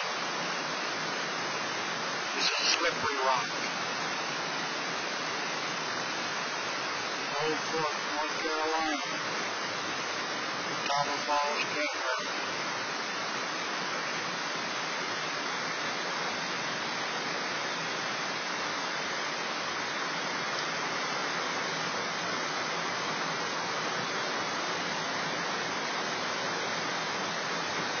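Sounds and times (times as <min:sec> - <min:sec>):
turbulent river water rushing: 0:00.0 - 0:28.0.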